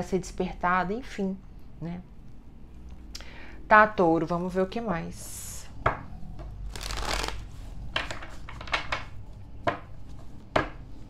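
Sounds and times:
cards being shuffled: 6.7s - 8.7s.

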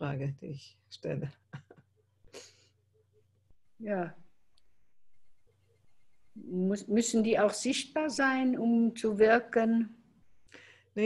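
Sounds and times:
woman speaking: 3.8s - 4.2s, 6.4s - 10.0s.

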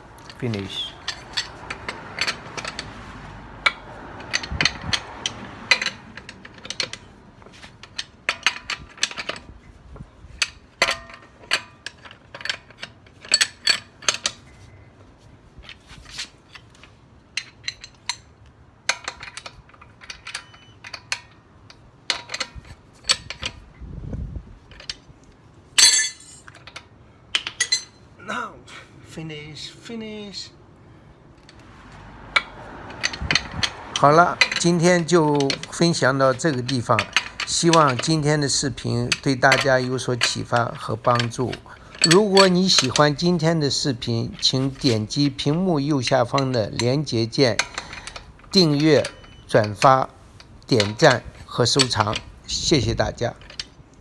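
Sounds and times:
metal clink: 18.9s - 21.4s, 25.8s - 28.0s, 32.3s - 45.5s, 47.6s - 50.0s.

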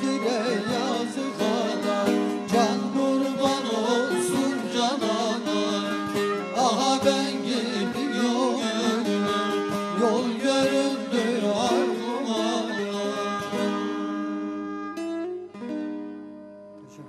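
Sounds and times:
man singing folk song: 0.0s - 14.2s
plucked lute: 0.0s - 17.0s.

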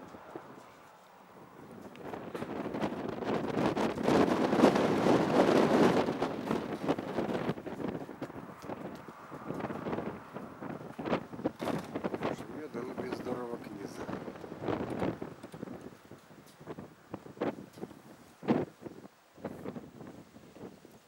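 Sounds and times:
gusty wind buffeting microphone: 0.0s - 21.0s.

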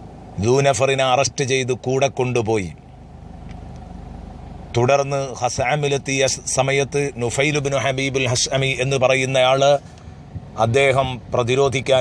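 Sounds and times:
low background rumble: 0.0s - 12.0s
man talking: 0.4s - 2.8s, 4.7s - 9.8s, 10.5s - 12.0s.

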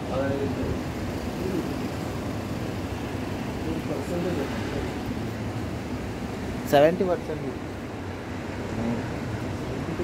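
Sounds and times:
low even urban hum: 0.0s - 10.0s.

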